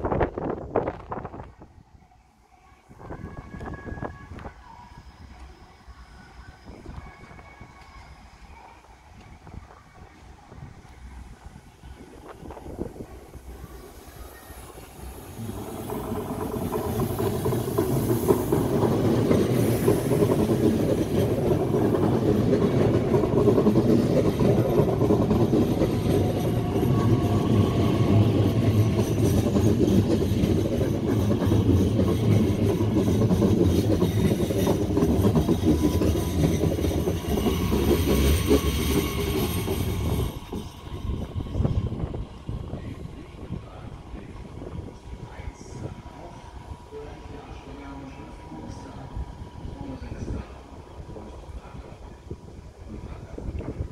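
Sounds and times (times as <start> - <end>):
faint train whine: 0.0 - 53.9
train wheels rolling on rails: 3.0 - 53.9.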